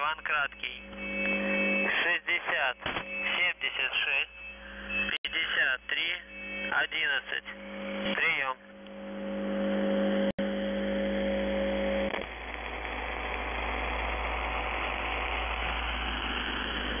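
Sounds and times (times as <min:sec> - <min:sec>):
radio static and hiss: 0:00.0 - 0:10.3
radio buzzer hum: 0:00.0 - 0:17.0.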